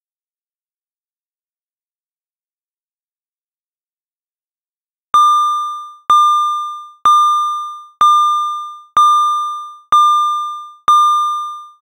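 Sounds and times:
intercom bell-like ding: 5.2 - 11.8.

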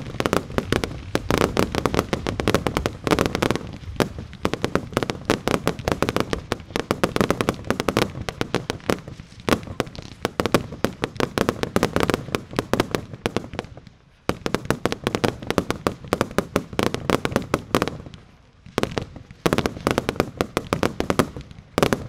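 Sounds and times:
fireworks thumps and bursts: 0.0 - 22.0.

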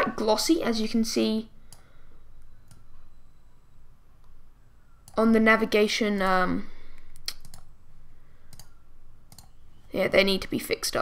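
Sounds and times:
computer mouse clicks: 2.6 - 2.9, 6.9 - 7.7, 8.5 - 9.6.

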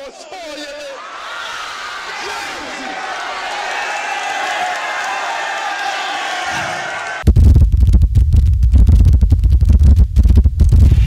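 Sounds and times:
crowd cheering and shouting: 0.0 - 7.2
deep rumbling crackling sound effect: 7.2 - 11.0.

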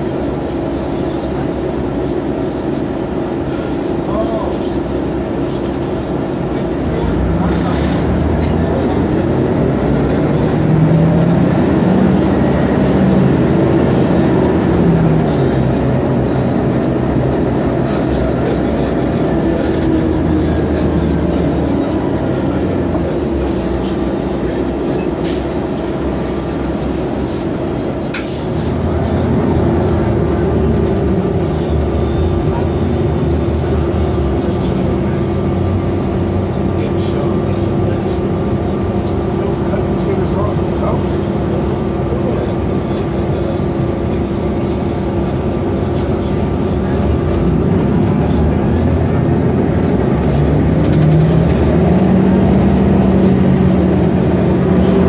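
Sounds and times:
bus diesel engine droning: 0.0 - 55.0.

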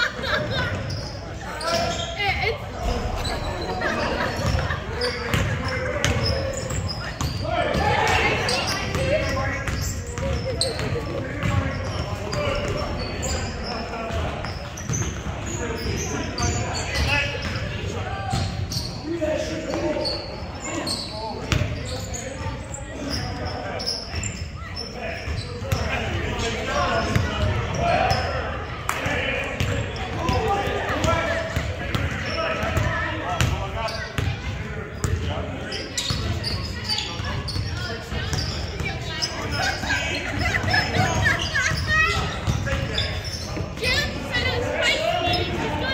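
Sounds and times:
players' indistinct voices: 0.0 - 45.9.

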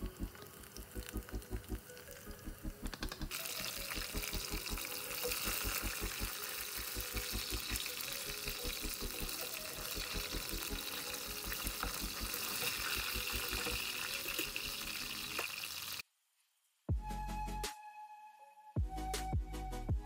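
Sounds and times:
oil sizzling: 0.0 - 16.0
background music with low beat: 16.9 - 20.0.

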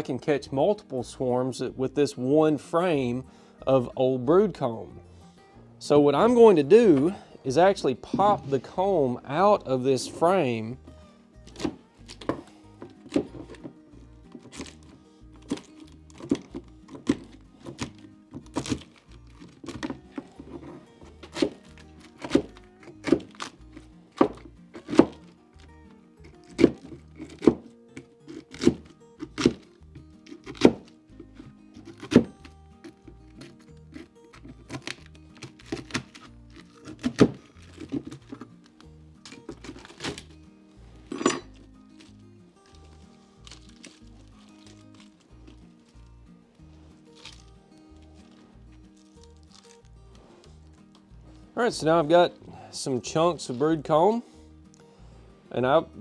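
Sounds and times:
background music with steady beat: 0.0 - 56.0.

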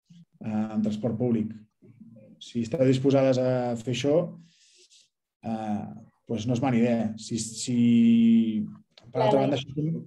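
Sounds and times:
man speaking over video call: 0.0 - 10.0.

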